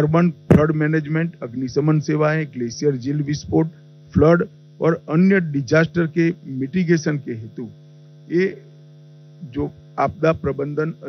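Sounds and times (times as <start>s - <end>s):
man speaking into a microphone: 0.0s - 8.7s, 9.4s - 11.0s
electrical mains hum: 0.0s - 11.0s.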